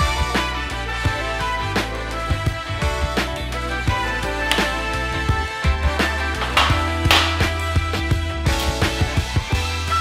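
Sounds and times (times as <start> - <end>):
background music with drums and bass: 0.0 - 10.0.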